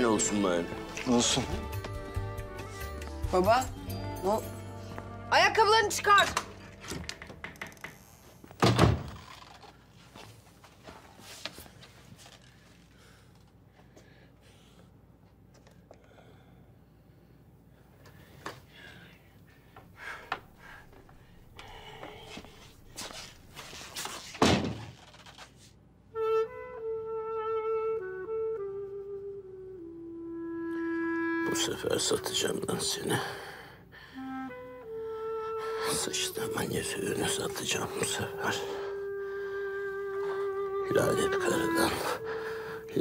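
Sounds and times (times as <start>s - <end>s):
flute-like background music: 0.0s - 7.0s, 26.0s - 33.1s, 34.0s - 43.0s.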